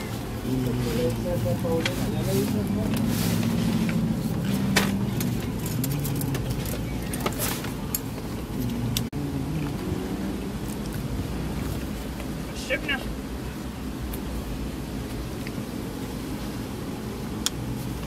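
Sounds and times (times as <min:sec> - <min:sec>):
vehicle engine humming: 0:00.0 - 0:18.0.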